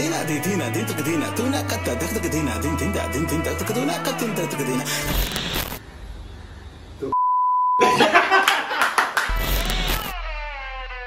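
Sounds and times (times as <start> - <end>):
high-pitched censor bleep: 7.2 - 7.8
intro music with glitchy hits: 9.3 - 11.0.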